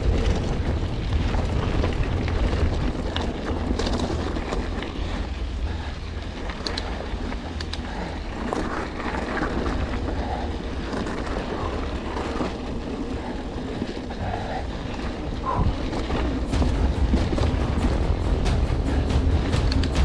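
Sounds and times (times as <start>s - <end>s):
bike clicking and rattling: 0.0s - 20.0s
bike tyres on gravel: 0.0s - 20.0s
wind rumble on microphone: 0.0s - 20.0s.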